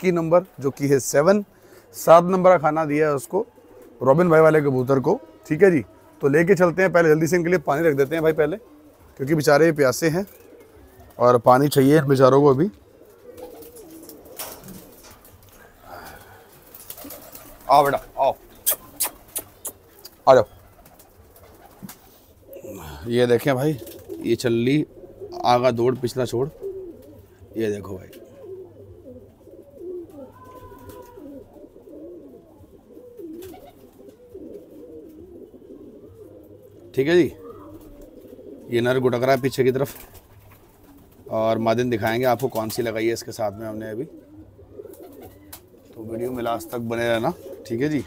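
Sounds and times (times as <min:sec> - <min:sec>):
pigeons cooing: 0:00.0 - 0:48.0.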